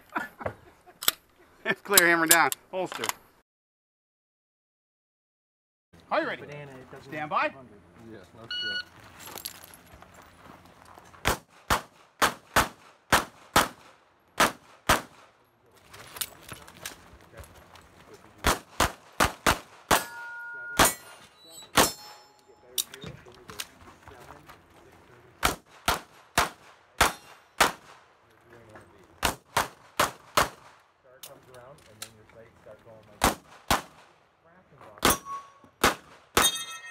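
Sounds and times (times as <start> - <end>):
pistol shots: 11.2 - 15.3, 18.4 - 21.2, 21.8 - 22.1, 25.4 - 28.0, 29.2 - 30.8, 33.2 - 34.2, 35.0 - 36.6
steel targets ringing: 19.9 - 22.8, 35.1 - 35.7, 36.4 - 36.9.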